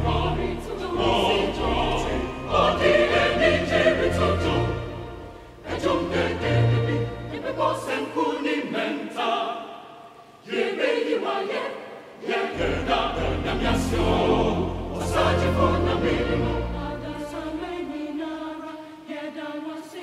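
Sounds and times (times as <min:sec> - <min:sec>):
choir singing: 0:00.0 - 0:20.0.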